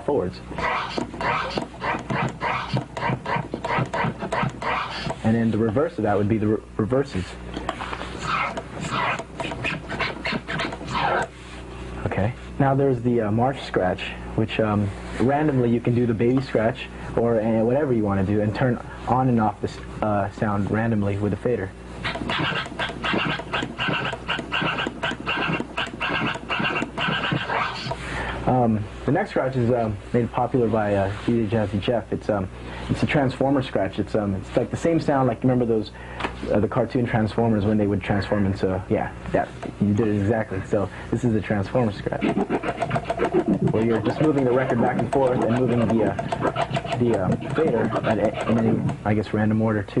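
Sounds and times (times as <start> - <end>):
vinyl record scratching: 0.0 - 6.2, 7.8 - 11.4, 22.0 - 28.0, 39.4 - 49.3.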